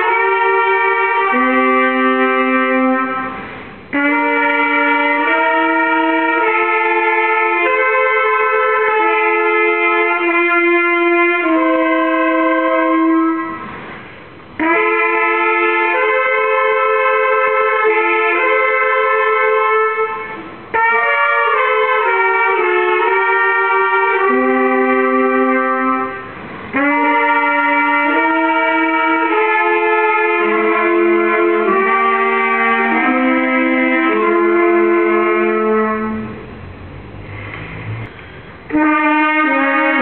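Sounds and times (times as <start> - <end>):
trumpets and saxophone playing chords: 0.0 - 36.6, 37.3 - 40.0.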